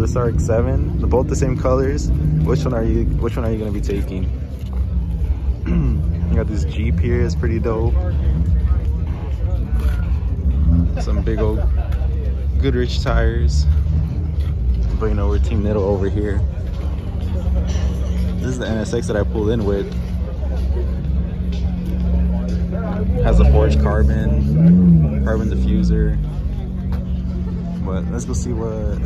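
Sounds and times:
faint voices talking: 0:00.0 - 0:29.0
vehicle engine idling: 0:00.0 - 0:29.0.

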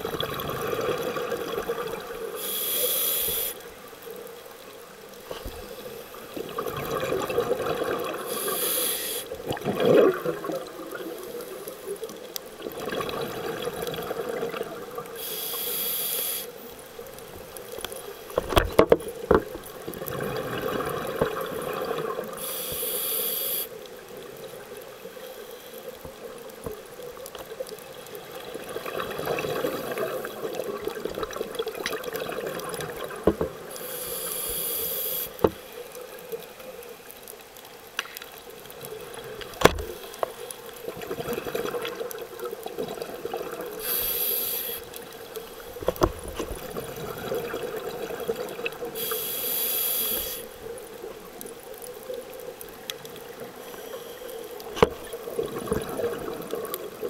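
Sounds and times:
exhaled bubbles gurgling: 0:00.0 - 0:03.5, 0:05.3 - 0:15.3, 0:18.3 - 0:23.1, 0:26.2 - 0:35.4, 0:38.5 - 0:57.0
regulator hiss on inhalation: 0:02.4 - 0:03.7, 0:08.3 - 0:09.4, 0:15.2 - 0:16.7, 0:22.4 - 0:23.8, 0:33.7 - 0:35.7, 0:43.8 - 0:44.9, 0:48.9 - 0:50.6, 0:53.6 - 0:54.6.

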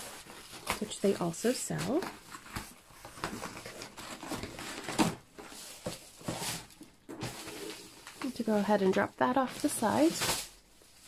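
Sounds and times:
cardboard and paper rustling: 0:00.0 - 0:11.0.

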